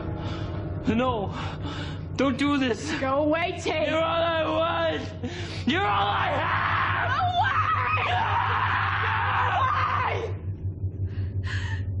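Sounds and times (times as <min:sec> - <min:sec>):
steady low hum: 0:00.0 - 0:12.0
woman screaming: 0:05.7 - 0:10.4.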